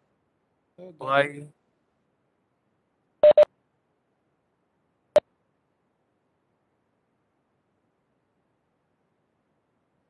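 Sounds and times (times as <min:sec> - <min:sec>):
short electronic beeps: 0:03.2 - 0:03.5.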